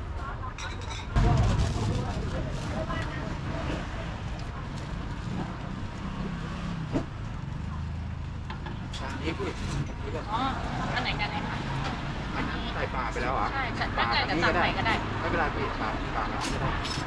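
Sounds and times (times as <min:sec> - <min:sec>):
traffic engine rumble: 0:00.0 - 0:17.0
voices talking: 0:07.3 - 0:16.8.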